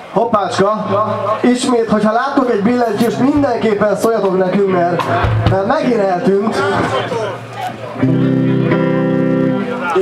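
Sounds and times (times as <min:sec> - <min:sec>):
guitar chord ringing: 0:07.2 - 0:10.0.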